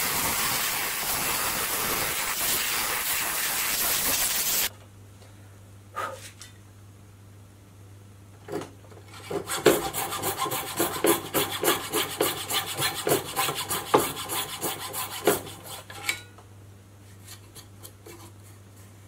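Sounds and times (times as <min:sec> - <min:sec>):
coping saw cutting wood: 0:09.3 - 0:15.9.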